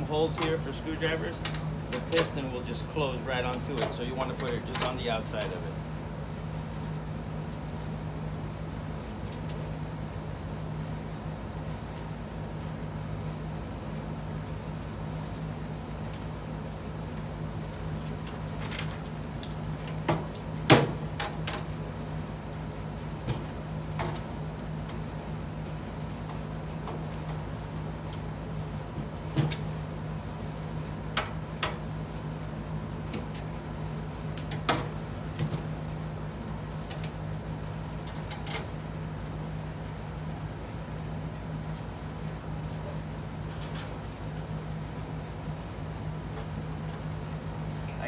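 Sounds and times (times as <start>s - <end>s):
steady low hum: 0.0s - 48.0s
metal bolts clicking and clinking: 1.3s - 2.4s, 3.4s - 5.6s, 38.0s - 38.7s.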